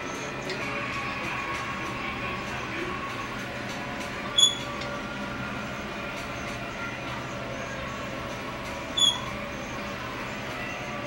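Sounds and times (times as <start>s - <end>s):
gym background hum: 0.0s - 11.0s
short high squeak: 4.4s - 4.7s, 9.0s - 9.3s.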